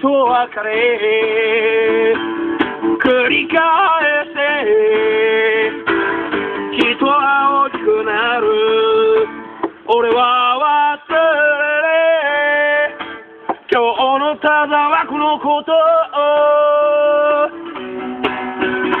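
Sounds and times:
man singing: 0.0 - 5.9, 6.7 - 17.8
acoustic guitar strumming: 0.0 - 19.0.

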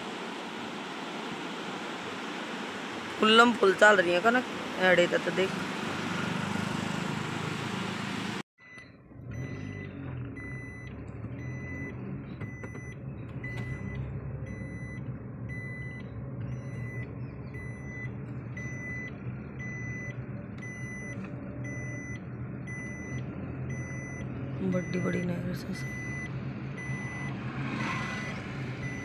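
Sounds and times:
car engine and road rumble: 0.0 - 29.0
electronic warning beeps: 8.6 - 29.0.

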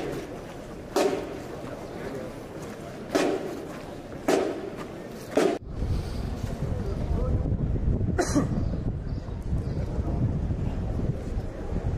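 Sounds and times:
sharp marching beats: 0.0 - 1.6, 3.0 - 5.6.

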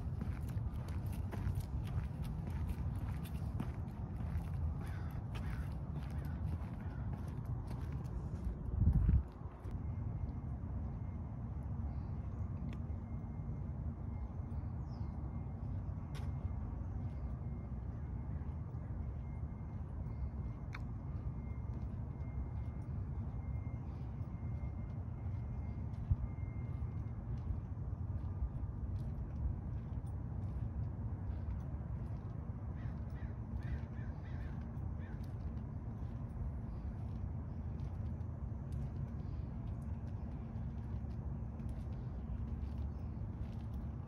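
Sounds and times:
footsteps on concrete: 0.0 - 9.8
wind rumble on microphone: 0.0 - 10.4
low outdoor rumble: 0.0 - 44.0.

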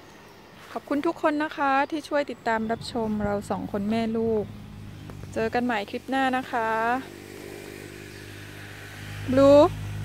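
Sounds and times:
low engine hum: 2.3 - 10.0.

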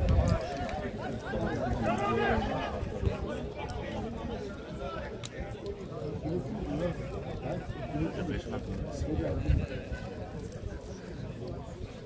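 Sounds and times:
spectators chatting: 0.0 - 12.0.

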